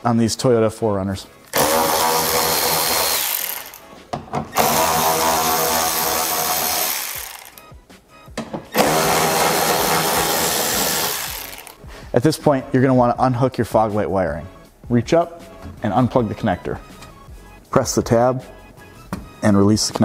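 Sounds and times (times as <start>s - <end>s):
electric ratchet running: 1.5s - 3.8s, 4.6s - 7.7s, 8.7s - 11.8s.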